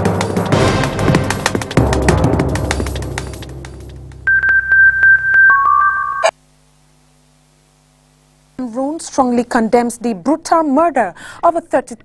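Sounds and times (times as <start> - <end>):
lower synthesizer tone: 4.0 - 6.3
held high synthesizer tone: 4.3 - 6.3.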